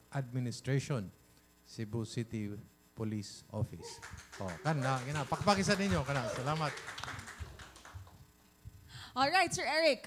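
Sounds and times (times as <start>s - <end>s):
light clapping: 3.8s - 8.2s.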